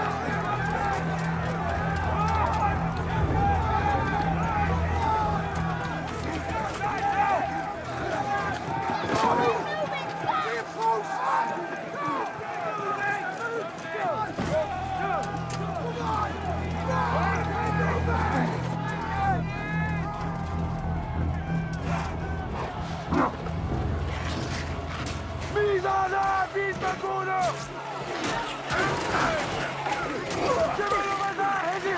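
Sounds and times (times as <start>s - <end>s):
low sustained film score: 0.0s - 10.9s, 14.3s - 31.9s
men shouting and screaming: 0.0s - 31.9s.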